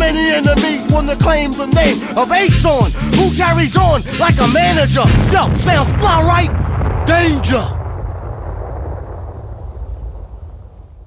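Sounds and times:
deep low rumble: 0:05.0 - 0:11.0.

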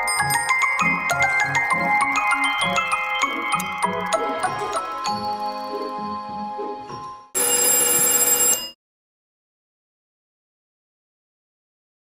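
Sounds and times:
bell ringing: 0:07.4 - 0:08.8.

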